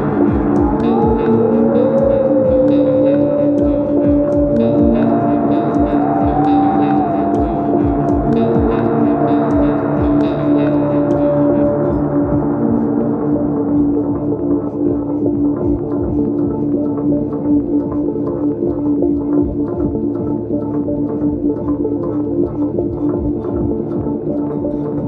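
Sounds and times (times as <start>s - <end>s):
sustained drone tones: 0.0s - 18.3s.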